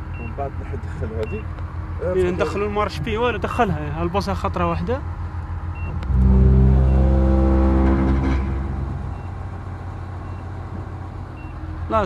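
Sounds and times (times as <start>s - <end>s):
crane diesel engine revving: 0.0s - 12.0s.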